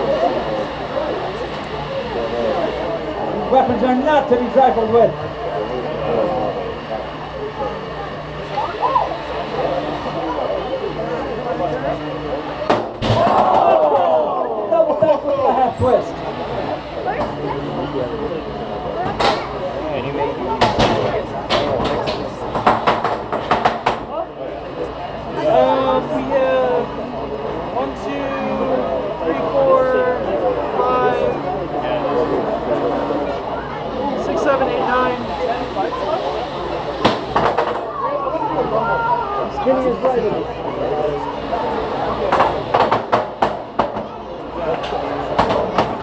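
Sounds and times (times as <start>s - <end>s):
crowd voices chattering: 0.0s - 46.0s.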